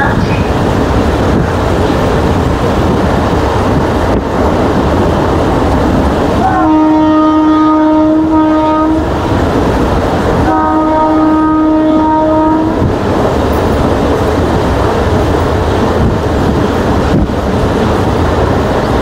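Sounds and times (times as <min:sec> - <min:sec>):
moving train rumble: 0:00.0 - 0:19.0
train horn blasts: 0:06.4 - 0:09.1, 0:10.4 - 0:12.9.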